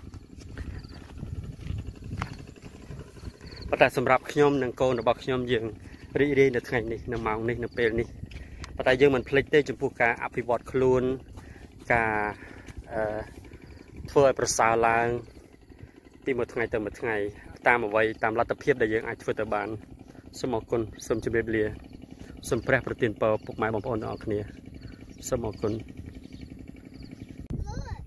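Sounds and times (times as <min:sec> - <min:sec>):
footsteps on dirt path: 0:00.0 - 0:27.5
low outdoor background: 0:00.0 - 0:28.0
person speaking: 0:03.4 - 0:13.4.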